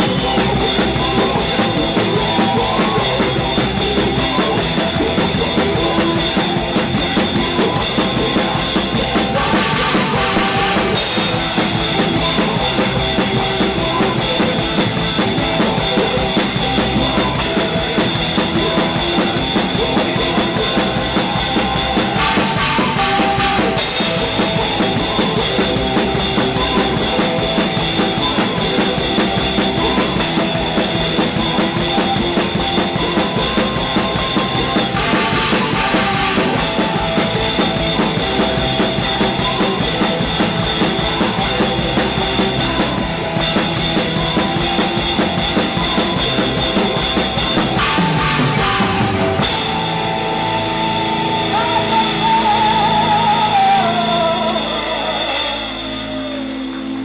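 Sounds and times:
drum kit: 0.0s - 57.0s
rock band playing live: 0.0s - 57.0s.

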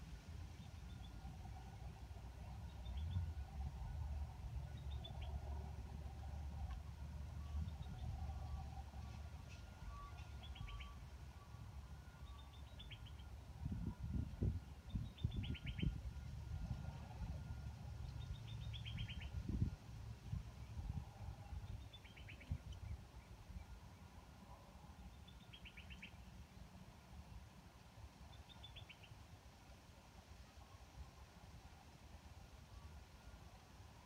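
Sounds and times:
low steady rumble: 0.0s - 34.0s
small bird singing: 10.0s - 11.0s, 12.3s - 13.3s, 14.9s - 16.0s, 18.0s - 19.4s, 25.1s - 26.2s, 28.3s - 29.1s.

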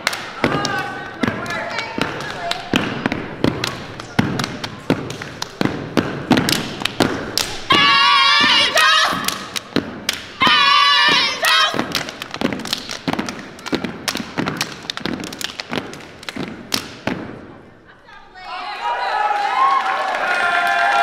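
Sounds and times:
hand claps: 0.0s - 7.6s, 8.4s - 17.0s
people shouting calls: 7.7s - 9.3s, 10.4s - 11.9s.

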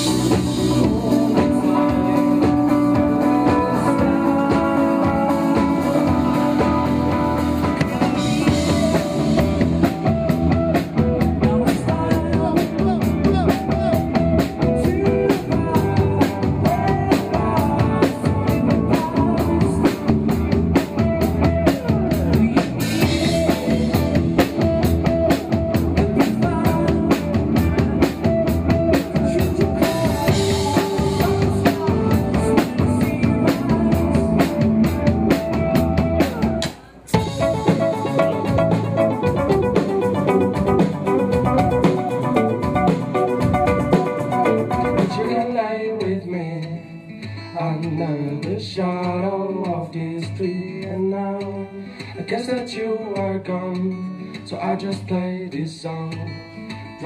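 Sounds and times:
band music with drums and guitar: 0.0s - 57.0s.

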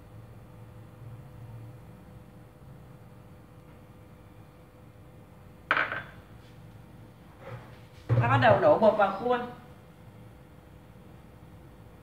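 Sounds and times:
kitchenware clatter: 5.7s - 6.2s.

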